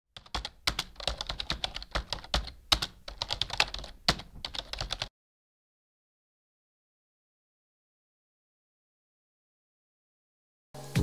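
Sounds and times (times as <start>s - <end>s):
keyboard typing: 0.2s - 5.1s.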